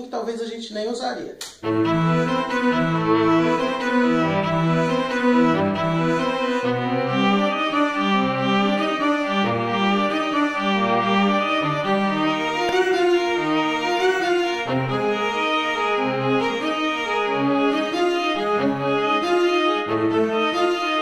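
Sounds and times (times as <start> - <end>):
cello low notes: 1.6 - 21.0
violin line: 1.6 - 21.0.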